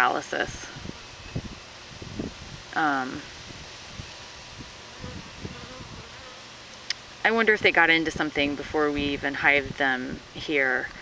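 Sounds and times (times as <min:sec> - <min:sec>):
honeybee buzzing faintly: 0:00.7 - 0:07.8.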